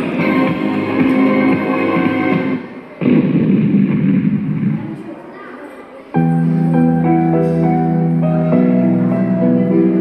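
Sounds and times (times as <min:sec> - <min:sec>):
loud rumbling blast: 0:02.3 - 0:05.0.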